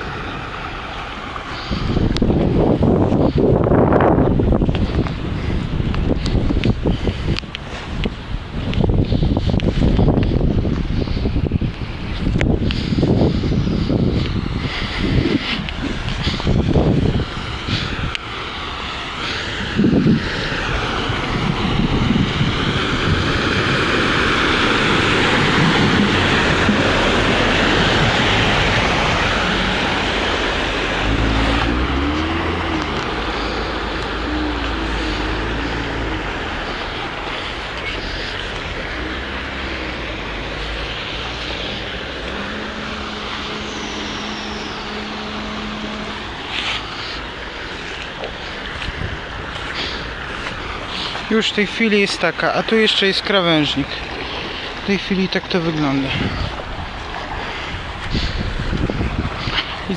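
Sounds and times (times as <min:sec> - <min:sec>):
low engine rumble: 0:00.0 - 0:59.9
tyres spraying through water: 0:00.0 - 0:59.9.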